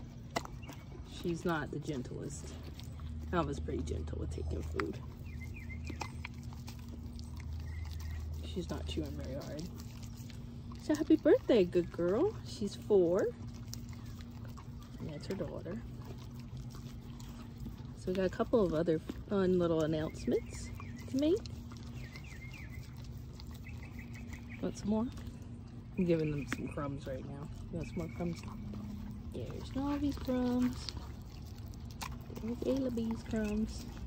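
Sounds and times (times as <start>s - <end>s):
dog chewing mouth clicks: 0.0s - 34.0s
low background hum: 0.0s - 34.0s
bird chirp: 5.0s - 8.5s, 19.9s - 29.6s.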